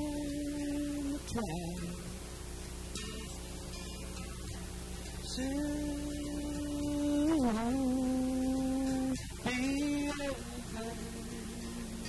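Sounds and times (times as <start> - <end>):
man singing long notes: 0.0 - 2.2, 5.2 - 12.0.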